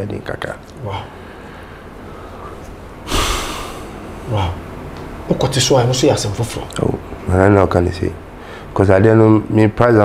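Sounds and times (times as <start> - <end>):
person breathing into microphone: 1.3 - 4.0.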